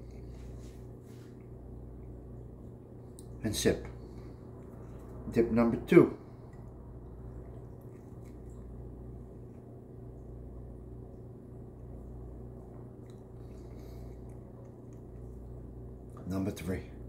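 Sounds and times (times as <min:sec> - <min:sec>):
steady low hum: 0:00.0 - 0:17.0
person chewing a cookie: 0:04.0 - 0:05.3, 0:06.3 - 0:16.2
person sipping coffee: 0:06.3 - 0:09.7, 0:12.8 - 0:15.5.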